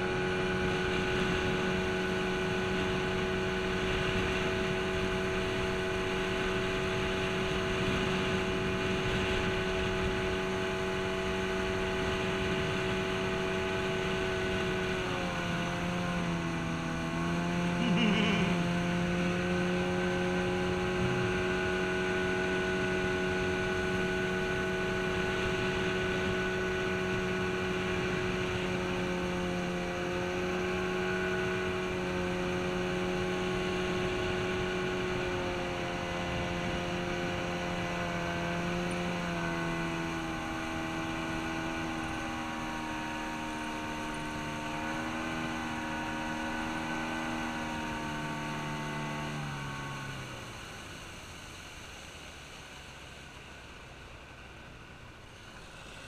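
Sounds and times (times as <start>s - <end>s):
outboard motor running: 0.0s - 56.0s
water noise: 0.0s - 56.0s.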